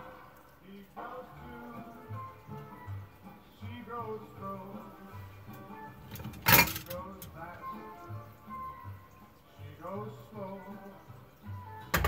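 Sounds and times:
song with singer: 0.0s - 12.0s.

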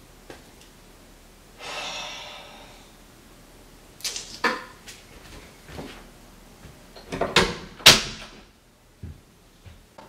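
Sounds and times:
breathy whoosh: 1.6s - 3.0s.

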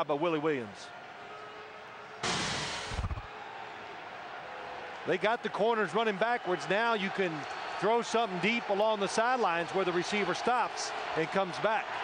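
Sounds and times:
faint stadium background noise: 0.0s - 12.0s
rushing whoosh: 2.2s - 3.3s.

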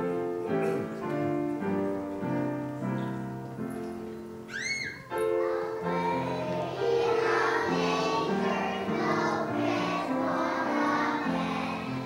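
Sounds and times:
piano accompaniment: 0.0s - 12.0s
children singing together: 4.6s - 12.0s.

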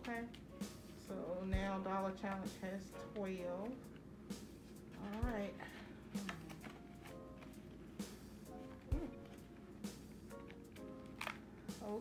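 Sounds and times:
soft background music: 0.0s - 12.0s
paper bills and plastic binder clicks: 2.1s - 4.0s, 4.9s - 12.0s.

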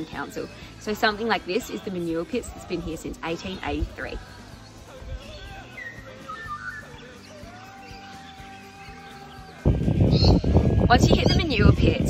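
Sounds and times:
birds chirping: 0.0s - 12.0s
soft music: 0.0s - 12.0s.

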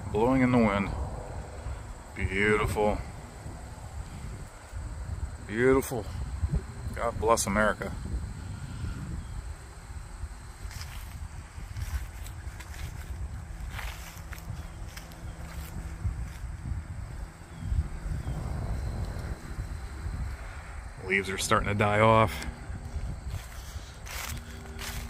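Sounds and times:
wind blowing over microphone: 0.0s - 25.0s
flag and leaves rustling: 1.4s - 7.4s, 8.2s - 25.0s.

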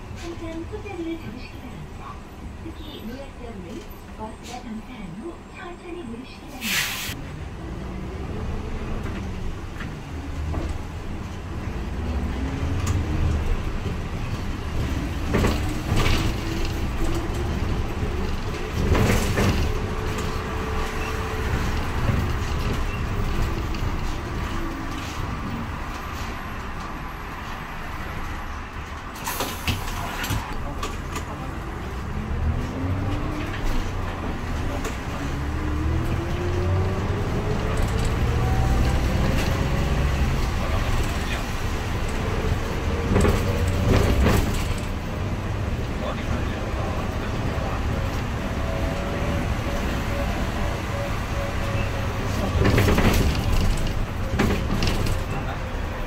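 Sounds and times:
rattles in bus cabin: 0.0s - 5.2s, 6.2s - 56.0s
bus engine rumble: 0.0s - 56.0s.

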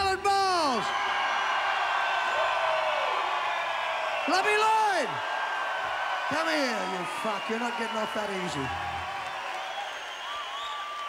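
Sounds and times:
crowd cheering: 0.0s - 11.0s.

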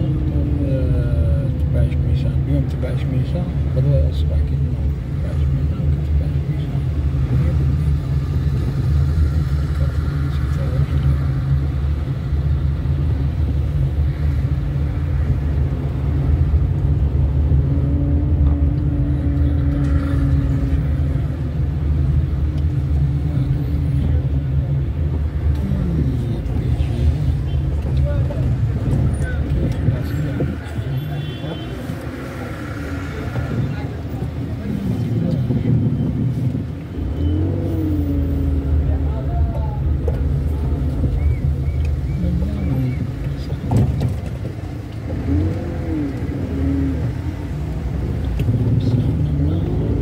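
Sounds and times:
car engine and road rumble: 0.0s - 50.0s.

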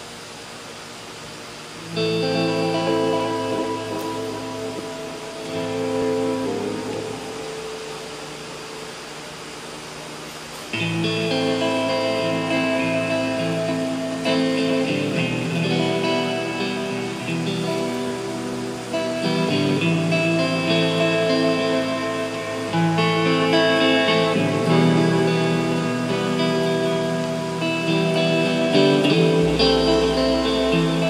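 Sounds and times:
amplified guitar chords: 0.0s - 31.0s.

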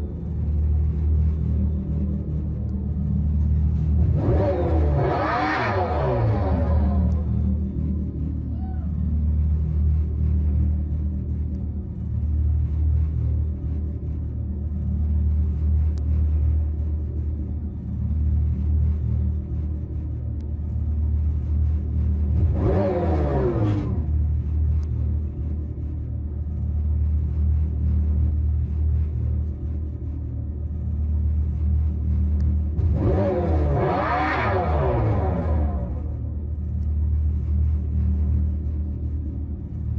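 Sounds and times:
synthetic exhaust note rumbling: 0.0s - 39.9s.

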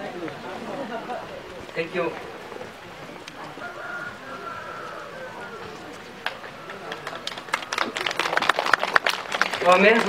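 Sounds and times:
faint background voices: 0.0s - 10.0s
rooster crowing: 3.6s - 5.9s.

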